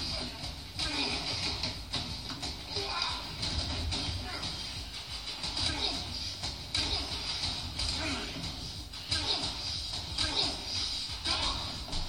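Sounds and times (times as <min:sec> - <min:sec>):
television drama audio: 0:00.0 - 0:12.0.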